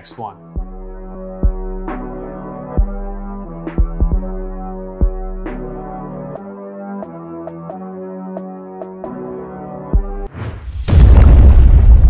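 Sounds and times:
heavy boom: 0:10.3 - 0:12.0.

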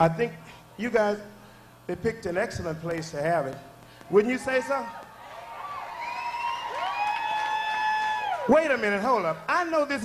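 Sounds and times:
crowd cheering and applauding: 0:04.5 - 0:08.8.

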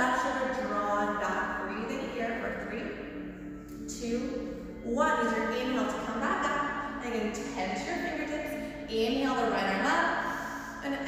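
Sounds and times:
woman speaking: 0:00.0 - 0:02.9, 0:03.8 - 0:11.0
soft background music: 0:00.0 - 0:11.0.

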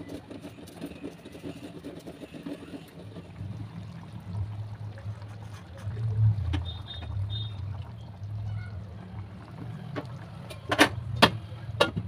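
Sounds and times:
stovetop low rumble: 0:01.2 - 0:12.0.

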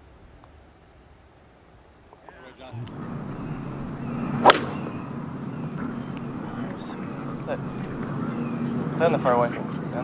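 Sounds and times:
background noise: 0:00.0 - 0:10.0
golf club striking ball: 0:02.9 - 0:08.4.

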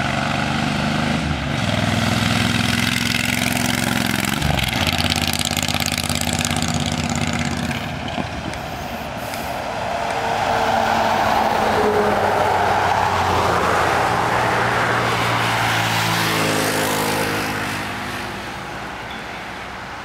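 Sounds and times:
motorcycle engine cruising: 0:00.0 - 0:19.4
truck driving past: 0:00.0 - 0:20.0.

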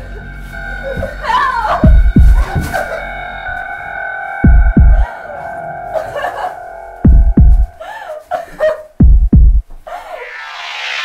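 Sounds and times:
sustained droning chord: 0:00.0 - 0:08.3
low double thump: 0:01.8 - 0:02.7, 0:04.5 - 0:05.1, 0:07.0 - 0:07.7.

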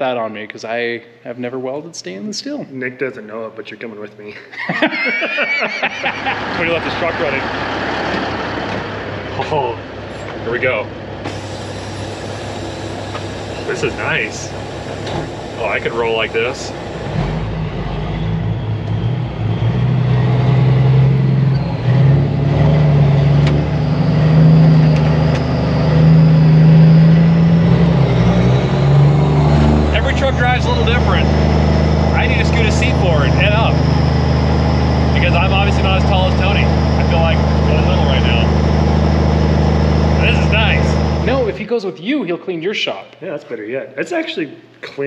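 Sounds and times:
diesel truck engine from cab: 0:05.8 - 0:41.6.

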